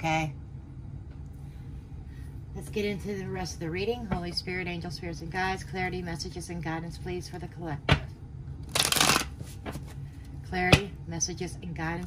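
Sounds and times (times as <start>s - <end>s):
cards being shuffled: 8.6s - 10.0s.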